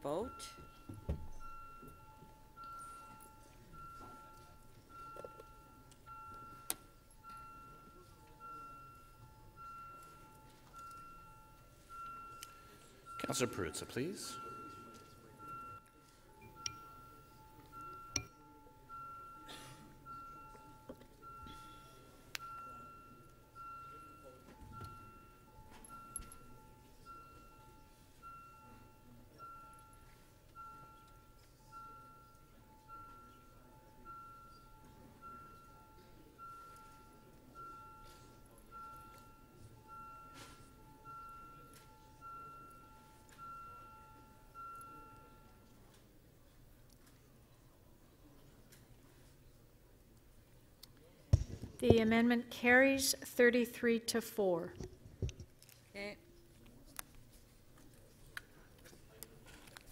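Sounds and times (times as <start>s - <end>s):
soft electronic chimes: 0.0s - 46.6s.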